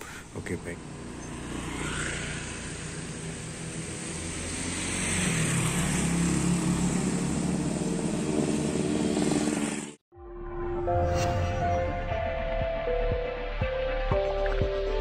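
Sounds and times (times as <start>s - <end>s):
street traffic: 0.0s - 10.0s
motorbikes passing close: 0.4s - 10.0s.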